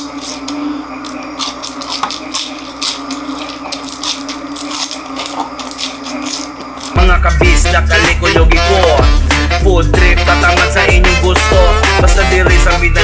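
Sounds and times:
crunching and chewing crispy food: 0.0 - 9.0
steady hum: 0.0 - 13.0.

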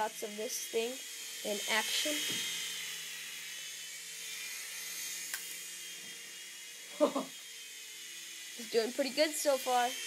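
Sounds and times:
toy helicopter rotors whirring: 0.0 - 10.0.

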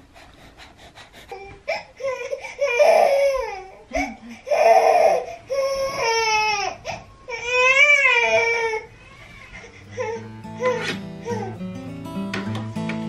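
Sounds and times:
baby crying: 1.3 - 11.6.

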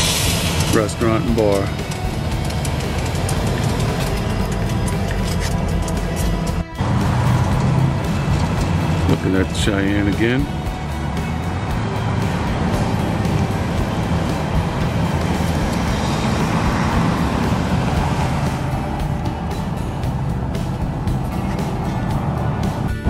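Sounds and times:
car engine and road rumble: 0.0 - 23.0
music playing: 0.0 - 23.0
vehicle passing: 1.4 - 23.0.

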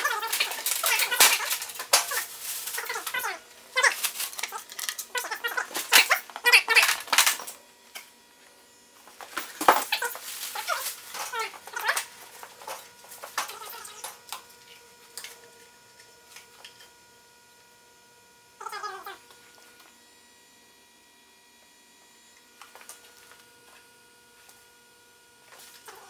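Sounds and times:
plastic wrapping crinkling: 0.0 - 7.4, 9.3 - 14.1
wavering squeaks: 13.4 - 14.2.

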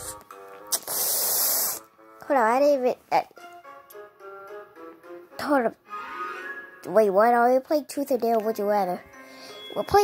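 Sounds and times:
soft background music: 0.0 - 10.0
loud burst of hiss: 0.7 - 1.8.

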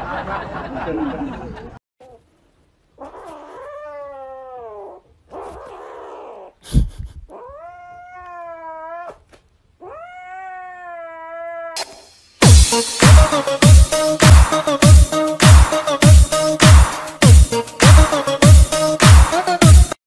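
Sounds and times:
kitten yowling meows: 3.0 - 6.5, 7.3 - 11.8
sharp click: 11.8 - 12.2.

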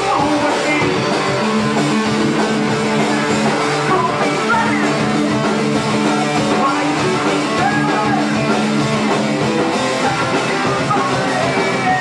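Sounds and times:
electric guitars: 0.0 - 12.0
heavy metal band playing live: 0.0 - 12.0.

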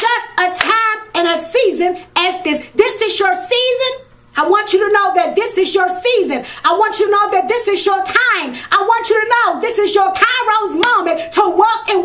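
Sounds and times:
hand claps: 0.0 - 0.8.

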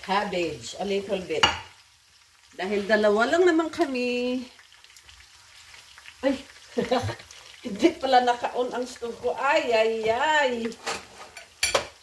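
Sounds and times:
food sizzling on stove: 0.0 - 12.0.

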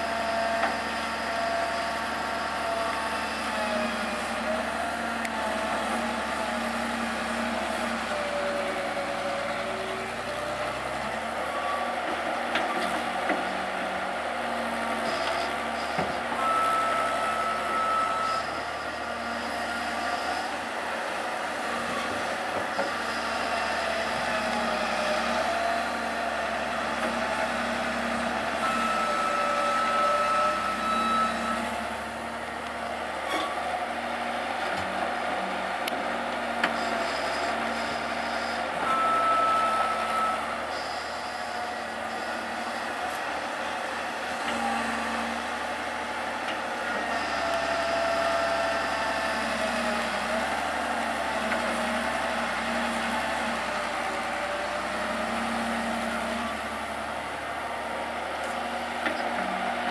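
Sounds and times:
excavator engine and hydraulics: 0.0 - 59.9.

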